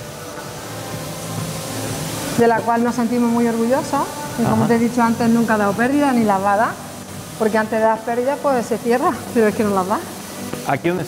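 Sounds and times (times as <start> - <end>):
bottling machinery hum and hiss: 0.0 - 11.0.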